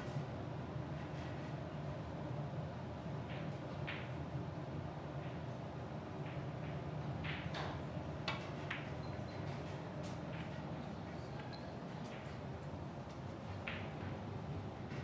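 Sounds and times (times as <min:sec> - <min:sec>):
low hum of hall: 0:00.0 - 0:15.0
billiard balls knocking together: 0:06.2 - 0:10.7.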